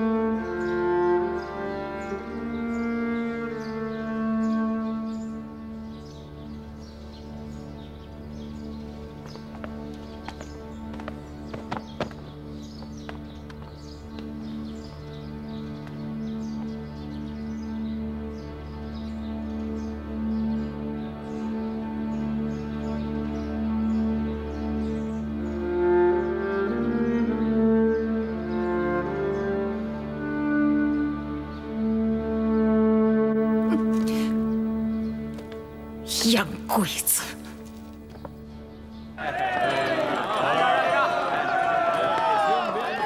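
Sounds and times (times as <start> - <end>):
higher string melody: 0.0 - 10.2, 16.2 - 39.1.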